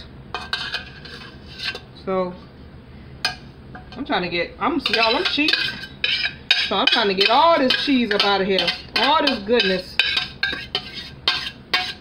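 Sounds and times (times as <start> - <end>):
metal utensil scraping saucepan: 0.3 - 1.9, 4.8 - 12.0.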